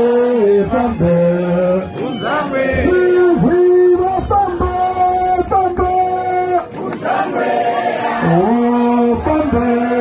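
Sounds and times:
men singing a chant: 0.0s - 4.8s, 8.2s - 10.0s.

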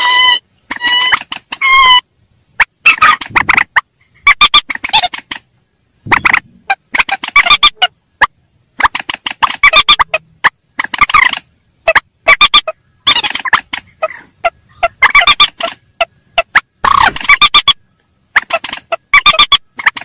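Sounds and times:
rail birds giving sharp repeated calls: 0.0s - 20.0s.

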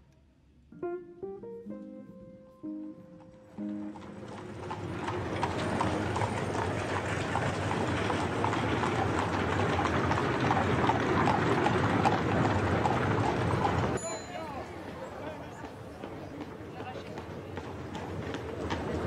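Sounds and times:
piano music: 0.7s - 6.7s
horse hooves clip-clopping: 3.2s - 14.0s, 14.6s - 19.0s
street traffic clatter: 3.6s - 19.0s.

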